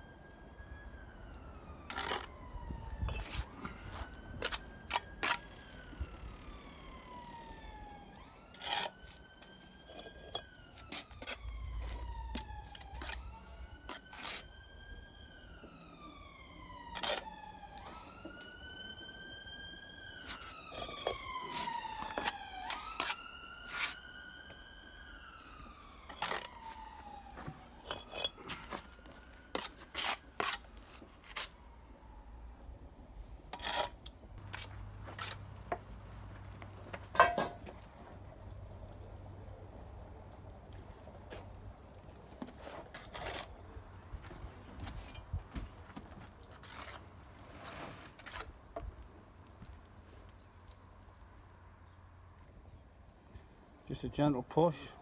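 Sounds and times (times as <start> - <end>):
emergency vehicle siren wailing: 0.0 - 47.4.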